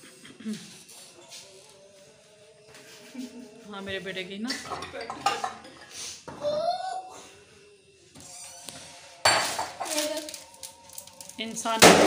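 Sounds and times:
glass bowl clinks: 4.7s - 5.7s
crisp packets crinkling: 9.8s - 11.8s.

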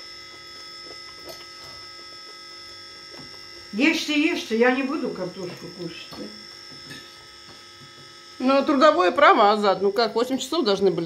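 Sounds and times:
steady electrical hum: 0.0s - 11.0s.

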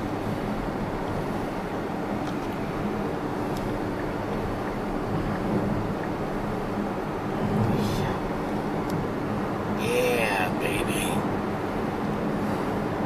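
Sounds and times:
wind noise: 0.0s - 10.0s.

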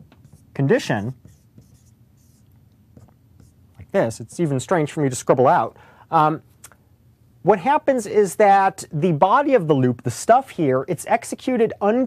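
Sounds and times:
marker scratching on whiteboard: 0.0s - 4.6s.

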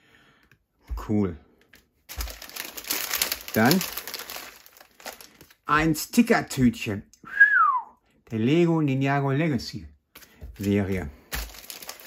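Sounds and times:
plastic bag crinkling: 2.1s - 6.0s, 10.6s - 12.0s.

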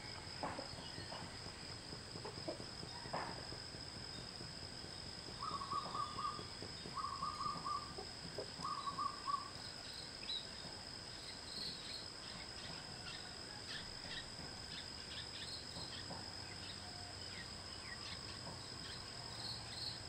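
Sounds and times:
insects droning: 0.0s - 20.0s
pulsed bird calls: 5.3s - 10.4s.

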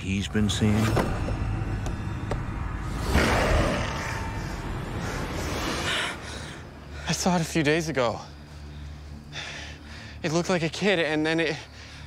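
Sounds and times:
low rumbling drone: 0.0s - 10.3s.

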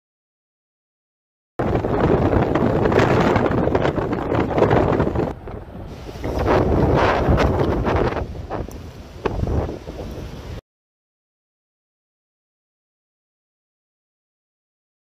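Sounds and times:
blizzard wind buffeting microphone: 1.6s - 10.6s.

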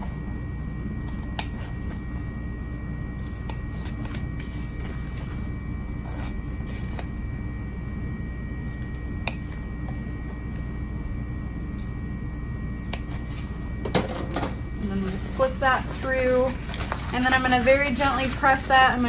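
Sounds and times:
steady low hum: 0.0s - 19.0s
woman speaking: 14.8s - 19.0s.

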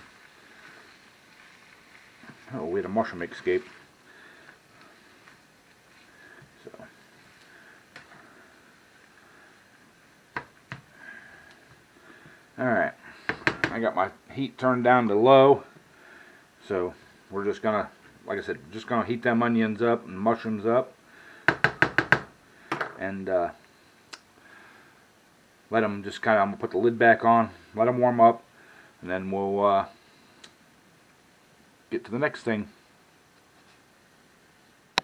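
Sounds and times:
spatula stirring food in skillet: 0.0s - 13.8s
low steady hiss: 0.0s - 35.0s
plastic spatula knocking on pan: 13.3s - 13.8s, 21.5s - 23.0s.

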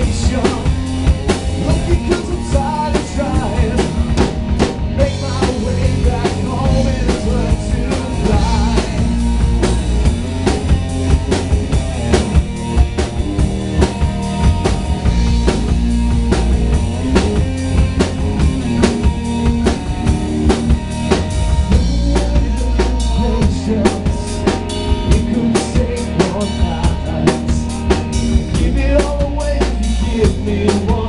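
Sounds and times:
live rock band playing: 0.0s - 31.0s.

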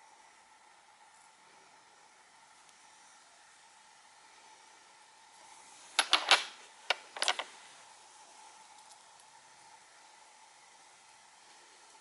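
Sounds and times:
stones clacking together: 6.0s - 7.5s.

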